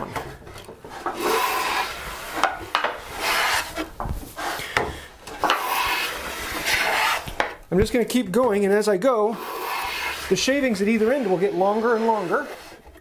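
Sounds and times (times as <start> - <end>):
hand plane shaving wood: 0.0 - 4.8, 5.4 - 7.5, 9.2 - 13.0.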